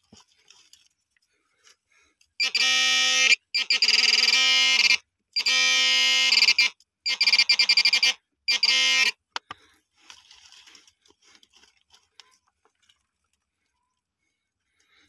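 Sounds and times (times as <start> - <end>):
metal detector buzzing and beeping: 2.4 - 9.4.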